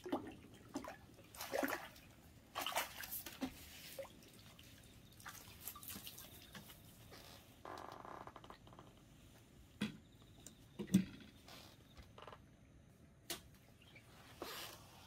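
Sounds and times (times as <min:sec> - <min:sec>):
water splashing and dripping: 0:00.0 - 0:07.4.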